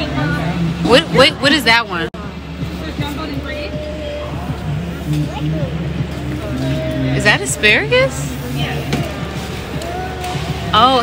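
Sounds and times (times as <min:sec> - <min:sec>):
indistinct voices: 0:00.0 - 0:11.0.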